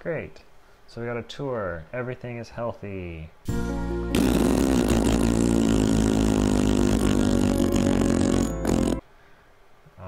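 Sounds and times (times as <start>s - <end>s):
buzzing low drone: 4.1s - 9.0s.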